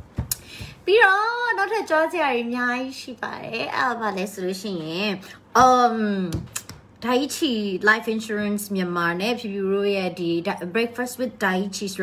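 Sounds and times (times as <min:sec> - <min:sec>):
woman speaking: 0:00.8 - 0:12.0.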